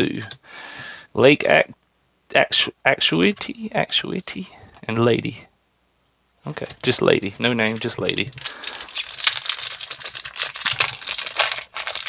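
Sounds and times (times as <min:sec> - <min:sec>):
foil wrapper crinkling: 0:07.6 - 0:12.0.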